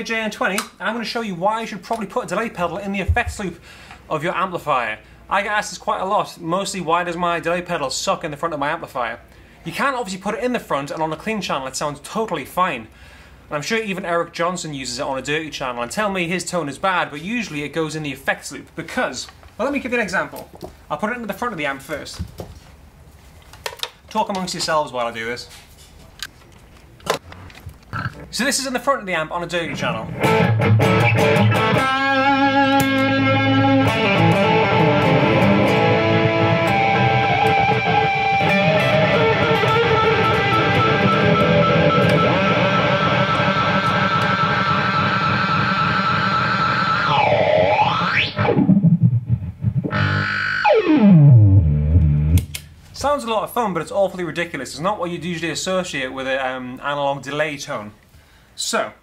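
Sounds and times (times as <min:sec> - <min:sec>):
distorted electric guitar with delay: 0:30.1 - 0:52.5
jack plug clicks: 0:52.0 - 0:52.7.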